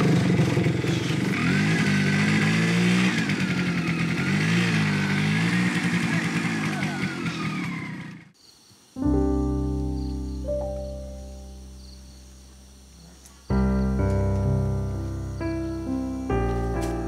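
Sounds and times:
motorcycle engine revving: 0.0s - 8.4s.

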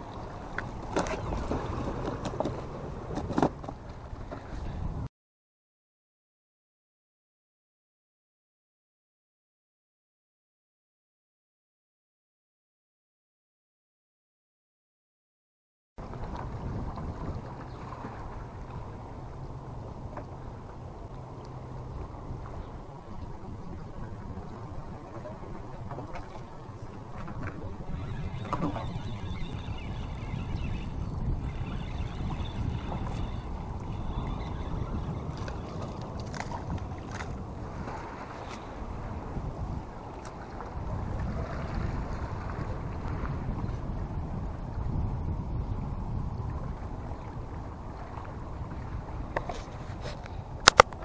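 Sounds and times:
wind buffeting microphone: 0.0s - 5.1s, 16.0s - 21.1s, 21.7s - 51.0s
fishing reel whirring and clicking: 27.9s - 35.7s.

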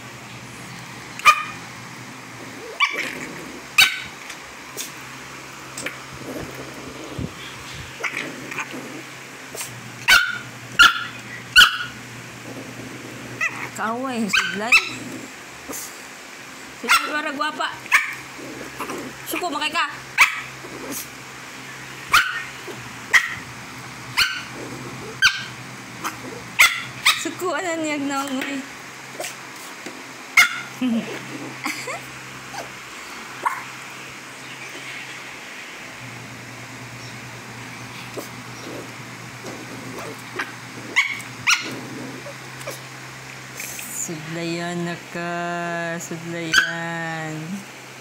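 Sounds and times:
small dog barking: 1.2s - 1.6s, 2.6s - 4.2s, 9.5s - 12.0s, 13.4s - 15.1s, 16.8s - 21.1s, 22.1s - 23.5s, 24.2s - 27.4s, 30.4s - 31.2s, 33.4s - 33.8s, 39.6s - 42.8s, 46.5s - 46.8s
small dog yipping: 1.2s - 1.6s, 2.7s - 3.1s, 3.8s - 4.2s, 10.1s - 12.0s, 17.9s - 18.2s, 20.2s - 20.5s, 22.1s - 23.4s, 24.2s - 24.5s, 25.2s - 27.2s, 30.4s - 30.7s, 33.4s - 33.7s, 40.0s - 41.7s.

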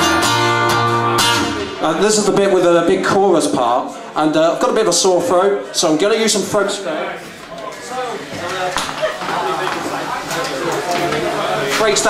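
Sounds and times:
people talking: 1.2s - 12.0s.

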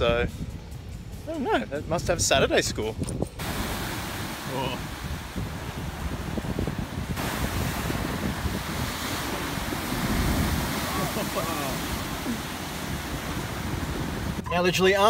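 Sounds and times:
wind buffeting microphone: 0.0s - 14.9s
ocean surf crashing in a cave: 3.4s - 14.4s.

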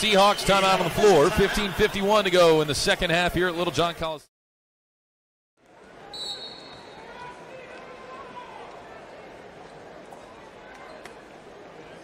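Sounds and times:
crowd noise: 0.0s - 4.2s, 5.6s - 12.0s
referee's whistle: 6.1s - 7.0s.

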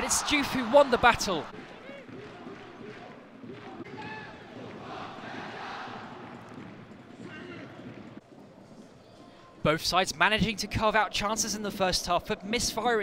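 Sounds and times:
louder crowd calls: 0.0s - 6.4s.

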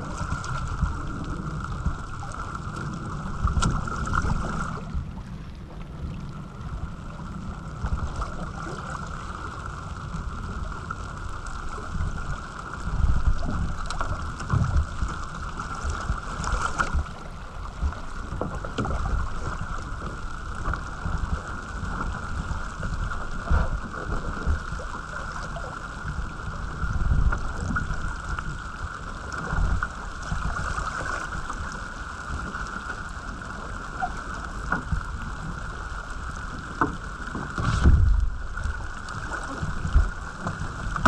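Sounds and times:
water washing along hull: 0.0s - 41.0s
small taps and splashes: 3.5s - 4.6s
wind buffeting microphone: 36.9s - 41.0s.

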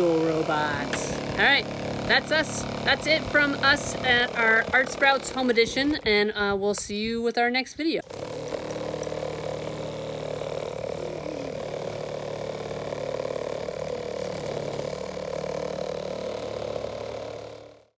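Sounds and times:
buzzing rattle of shaking cup: 8.0s - 17.9s.

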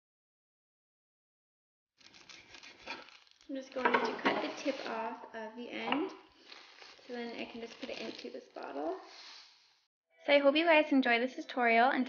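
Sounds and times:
knife scraping cutting board: 2.0s - 5.1s
plastic bag rustling: 2.0s - 9.7s.

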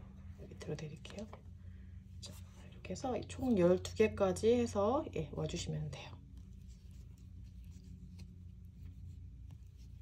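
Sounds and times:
steady low hum: 0.0s - 10.0s
crochet hook rubbing cord: 6.3s - 10.0s.

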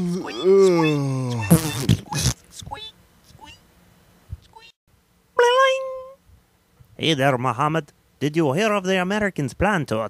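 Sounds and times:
short pitched call: 5.4s - 6.2s.

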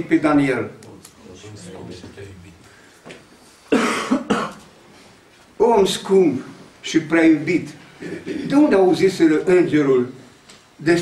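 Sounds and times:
person coughing: 3.7s - 4.6s, 8.0s - 8.6s.

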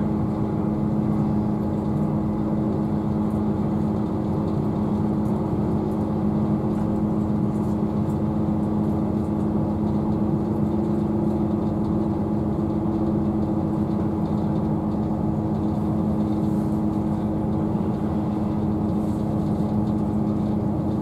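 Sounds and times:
diesel engine drone: 0.0s - 21.0s.

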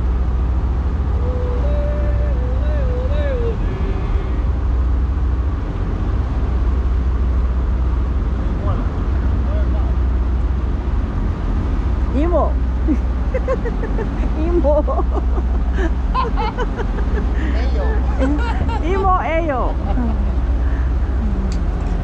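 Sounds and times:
ship engines rumbling: 0.0s - 22.0s
people talking: 12.1s - 15.4s, 17.4s - 20.3s, 21.2s - 21.6s.

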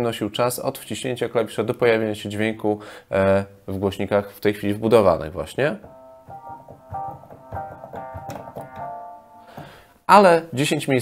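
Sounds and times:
piano notes and chords: 5.8s - 9.9s.

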